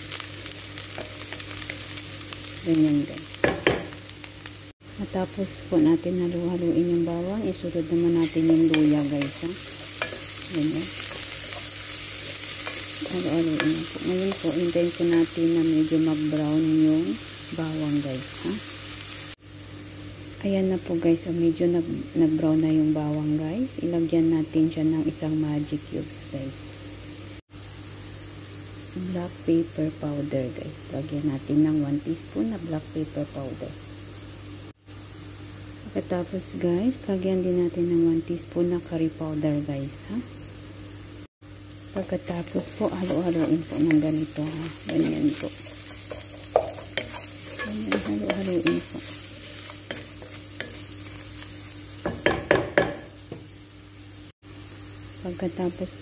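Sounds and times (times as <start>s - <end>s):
food sizzling in frying pan: 0.0s - 56.0s.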